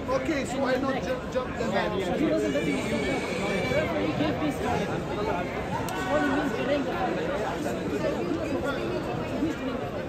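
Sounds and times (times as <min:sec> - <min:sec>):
overlapping indistinct chatter: 0:00.0 - 0:10.0.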